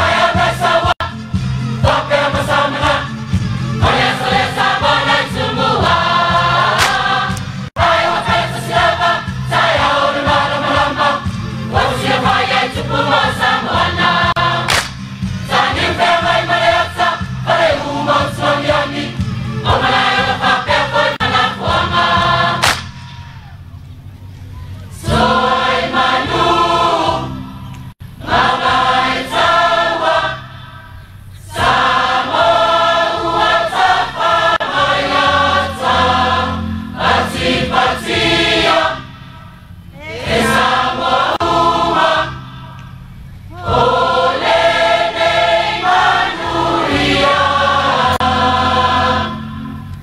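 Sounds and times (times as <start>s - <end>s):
choir singing: 0.0s - 23.0s, 25.0s - 50.0s
low accompaniment: 31.6s - 50.0s.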